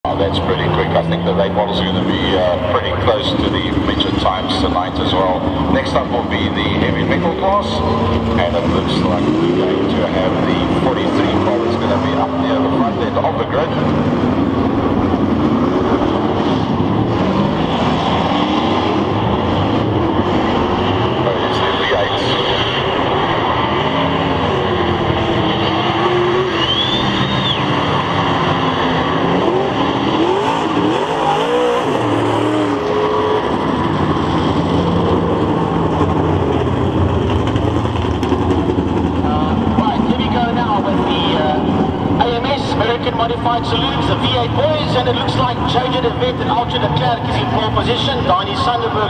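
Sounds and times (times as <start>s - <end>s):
race car engines revving: 0.0s - 49.0s.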